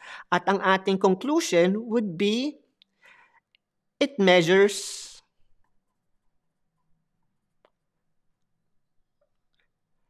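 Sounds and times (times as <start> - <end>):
person speaking: 0.3 - 2.7, 4.0 - 5.4.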